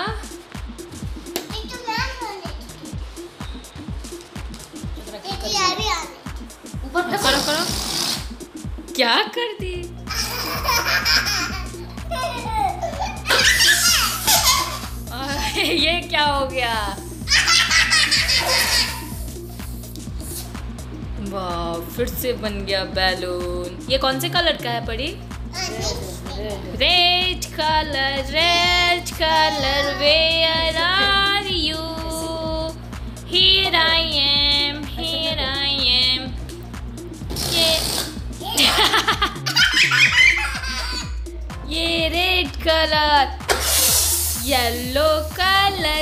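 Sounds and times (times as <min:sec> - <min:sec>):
background music: 0:00.0 - 0:46.0
toddler laughing: 0:05.0 - 0:05.9, 0:10.1 - 0:15.8, 0:17.3 - 0:19.2, 0:38.4 - 0:41.2.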